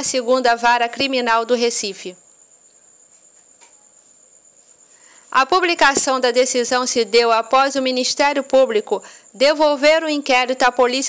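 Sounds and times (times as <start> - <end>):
high-pitched insect trilling: 0.0 - 11.0
low hiss: 0.0 - 11.0.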